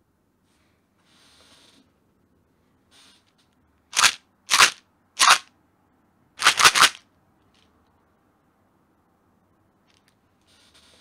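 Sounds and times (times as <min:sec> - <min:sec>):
short sharp bursts of noise: 0:03.9 - 0:05.5, 0:06.4 - 0:07.0.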